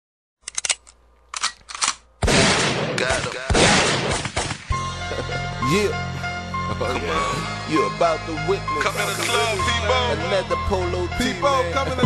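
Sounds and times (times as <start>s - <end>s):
sharp clicks and rustling: 0.4s - 2.0s.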